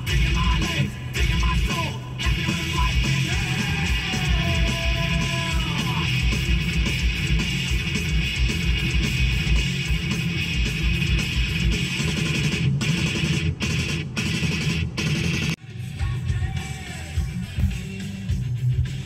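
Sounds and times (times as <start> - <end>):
rock music with guitar: 0.0 - 19.0.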